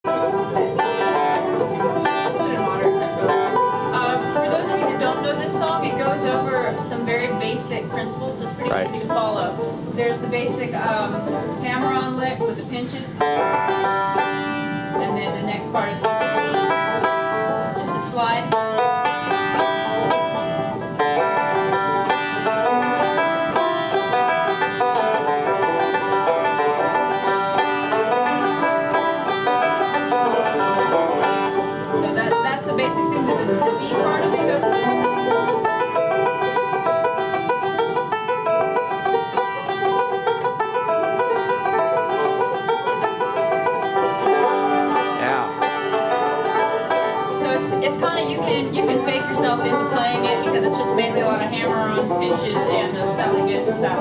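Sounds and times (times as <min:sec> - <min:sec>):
banjo picking: 0:00.0 - 0:54.0.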